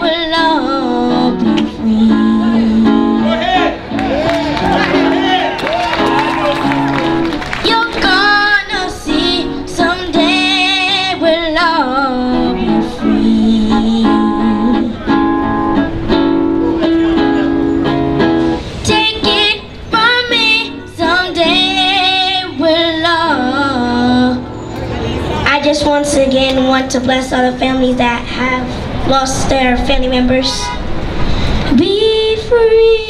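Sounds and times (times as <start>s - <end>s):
girl singing into a microphone: 0.0s - 3.2s, 7.6s - 15.2s, 18.7s - 24.6s, 25.4s - 33.0s
instrumental backing music: 0.0s - 27.4s.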